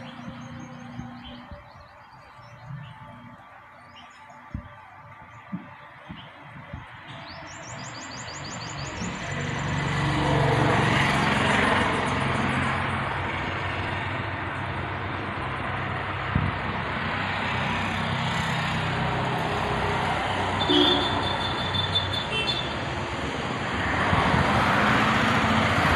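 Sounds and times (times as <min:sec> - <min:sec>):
vehicle engine and tyres on road: 0:00.0 - 0:25.9.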